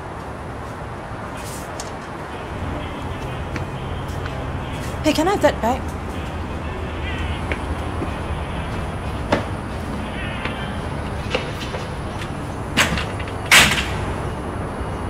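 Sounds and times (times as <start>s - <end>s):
metal security gate clanking: 10.8s - 14.4s.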